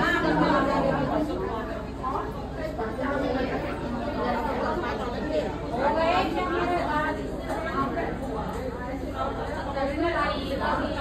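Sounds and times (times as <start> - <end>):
overlapping chatter: 0.0 - 11.0.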